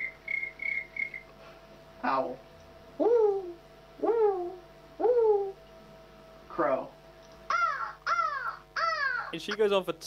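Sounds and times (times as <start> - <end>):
girl imitating crow caws: 7.5 - 9.4.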